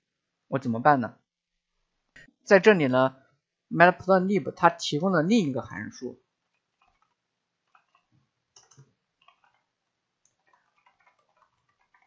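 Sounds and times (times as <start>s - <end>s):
faint keyboard typing: 6.3s - 12.0s.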